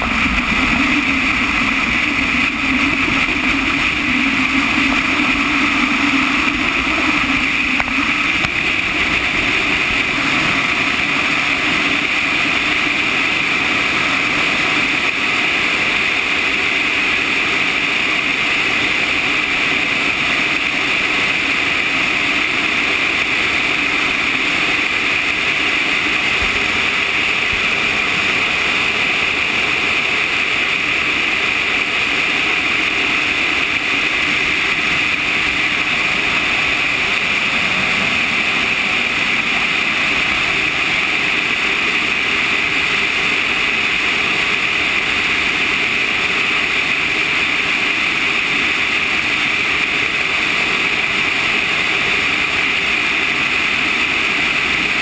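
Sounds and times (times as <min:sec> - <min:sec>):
low rumble: 0:00.0 - 0:14.4, 0:34.2 - 0:42.1
wind rushing over camera: 0:00.0 - 0:15.3.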